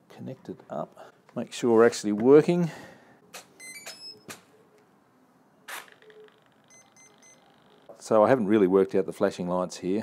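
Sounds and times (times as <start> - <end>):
high electronic start-up beeps: 6.0 - 7.9.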